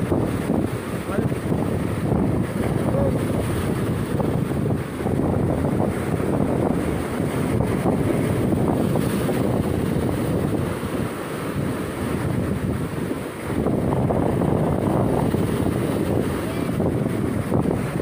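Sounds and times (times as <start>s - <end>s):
surf breaking over rocks: 0.0s - 18.0s
wind buffeting microphone: 0.0s - 18.0s.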